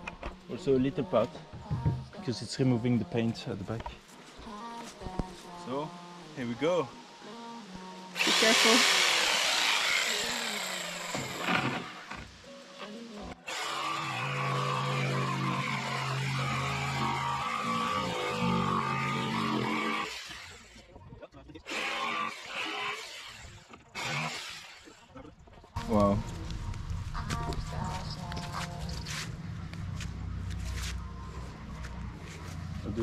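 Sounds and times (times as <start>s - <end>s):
electric saw cutting wood: 8.1s - 20.9s, 21.6s - 25.1s.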